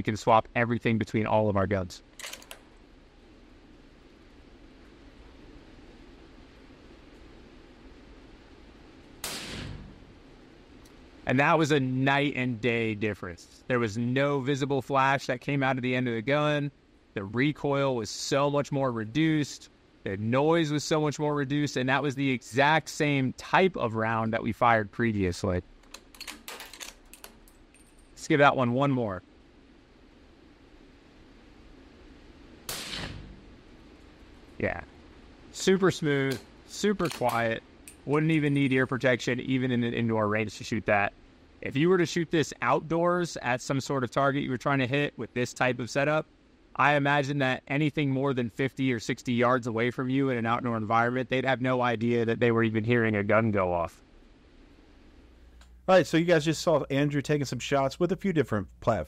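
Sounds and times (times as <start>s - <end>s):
suppressed rifle shot: 9.2s - 10.2s, 32.6s - 33.6s.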